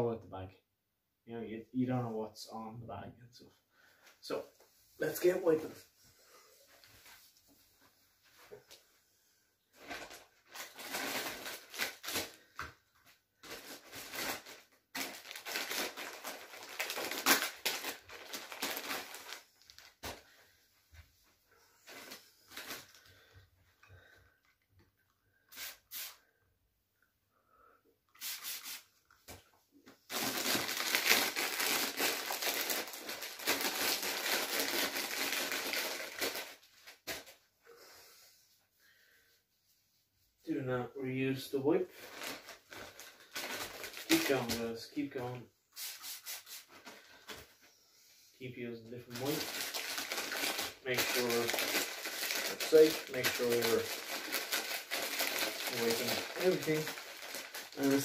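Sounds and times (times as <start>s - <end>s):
packaging crinkling: 9.8s - 12.6s, 13.4s - 20.3s, 30.1s - 37.3s, 41.9s - 44.6s, 49.1s - 58.0s.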